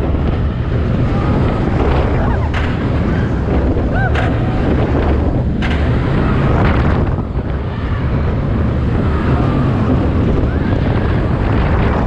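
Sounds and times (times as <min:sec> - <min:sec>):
roller coaster wheels rumbling on track: 0:00.0 - 0:12.0
wind rushing over microphone: 0:00.0 - 0:12.0.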